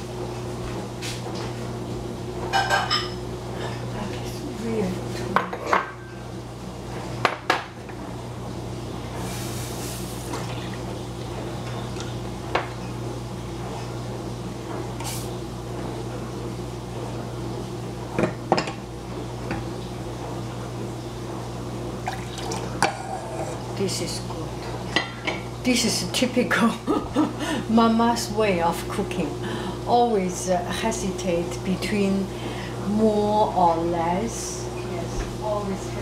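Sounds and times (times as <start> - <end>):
steady low hum: 0.0 - 36.0
milk pouring: 22.0 - 22.8.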